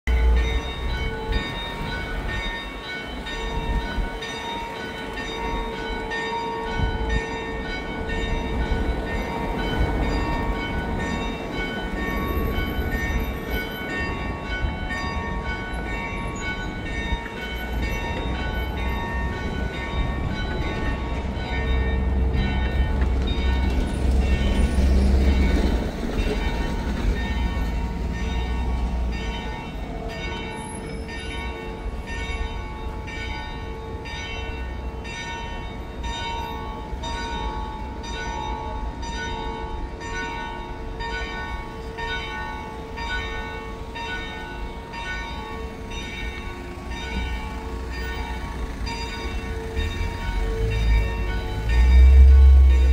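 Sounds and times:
church bells ringing: 0.0s - 52.9s
street traffic rumble: 0.0s - 52.9s.

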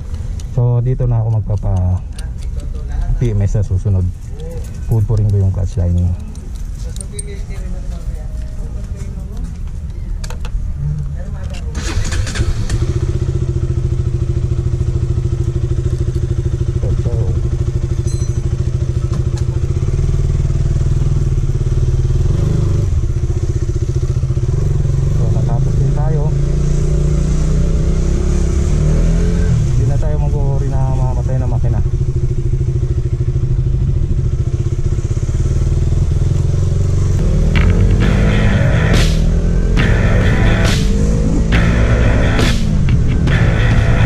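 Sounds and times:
motorcycle engine starting and running: 0.0s - 44.0s.

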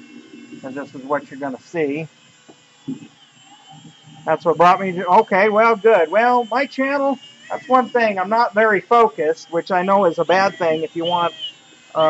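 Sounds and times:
drill motor whine: 0.0s - 12.0s.

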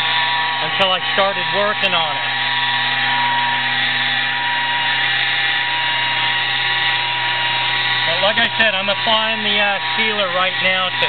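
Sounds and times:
electric polisher motor whine: 0.0s - 11.0s.

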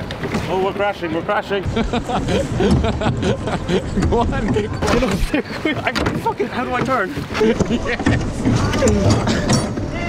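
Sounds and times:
men laughing and whooping: 1.6s - 9.5s
oars knocking in rowlocks: 2.5s - 10.0s.

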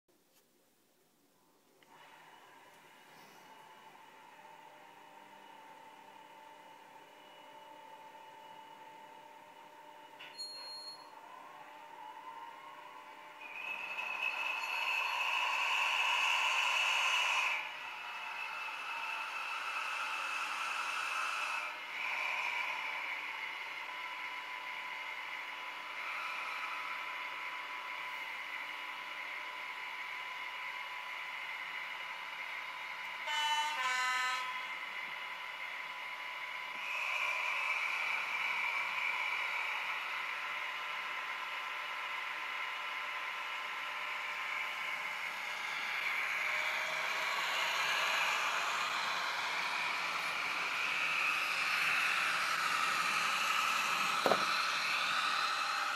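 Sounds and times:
two-tone train horn: 33.2s - 34.8s.

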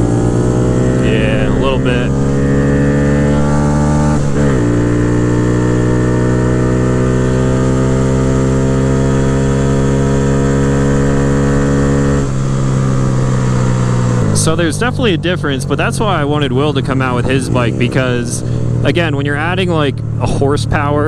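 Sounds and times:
motorcycle engine at full throttle: 0.0s - 21.0s.

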